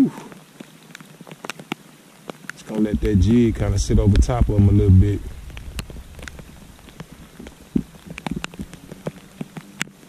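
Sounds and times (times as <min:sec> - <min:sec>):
rain hissing on water: 0:00.0 - 0:10.0
raindrop taps: 0:00.3 - 0:10.0.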